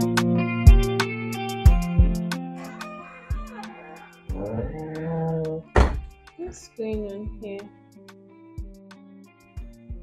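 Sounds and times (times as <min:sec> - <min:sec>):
music with ticking beat: 0:00.0 - 0:02.4, 0:03.3 - 0:10.0
woman speaking: 0:04.4 - 0:05.5, 0:06.4 - 0:07.7
loud sharp thud: 0:05.8 - 0:06.1.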